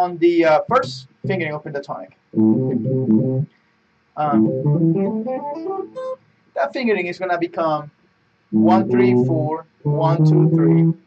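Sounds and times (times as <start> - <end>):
electric guitar picked notes: 2.4 - 3.5, 4.2 - 6.2, 8.5 - 11.0.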